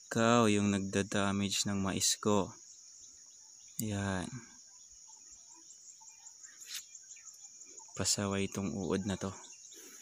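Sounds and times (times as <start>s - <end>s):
insects trilling: 0.0s - 10.0s
brief rustle: 6.6s - 6.9s.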